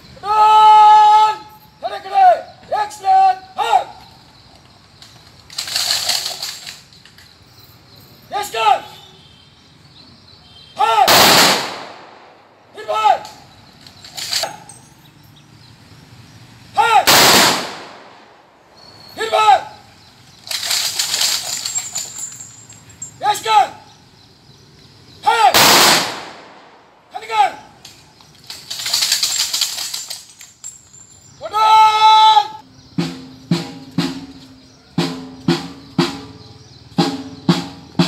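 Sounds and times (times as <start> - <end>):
loud held call: 0.2 - 4.1, 10.5 - 11.8, 16.8 - 18.0, 18.9 - 20.0, 25.2 - 26.0, 31.4 - 32.6
shouted drill command: 0.2 - 4.1, 8.3 - 9.1, 10.7 - 11.2, 12.8 - 13.4, 16.8 - 17.2, 19.2 - 19.9, 23.2 - 23.9, 25.2 - 25.6, 27.1 - 27.8, 31.4 - 32.6
rifle volley crack: 11.0 - 13.5, 17.0 - 18.6, 25.4 - 27.1
faint sharp burst: 11.1 - 12.6, 17.1 - 18.6, 25.6 - 27.0
snare drum strikes: 35.0 - 36.4, 37.0 - 38.0.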